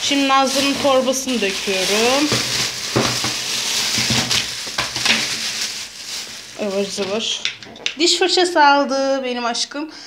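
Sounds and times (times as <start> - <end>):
plastic bag rustling: 0.0 - 7.6
packets dropping onto wooden floor: 1.9 - 5.8.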